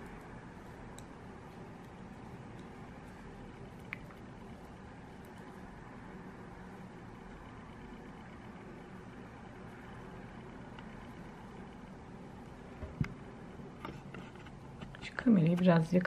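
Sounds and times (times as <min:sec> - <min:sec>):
low background hum and hiss: 0:00.0 - 0:16.0.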